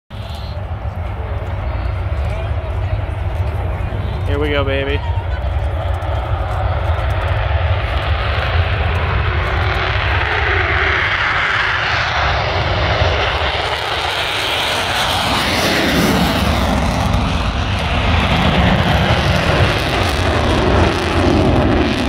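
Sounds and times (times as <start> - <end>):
jet engines roaring: 0.1 - 22.0.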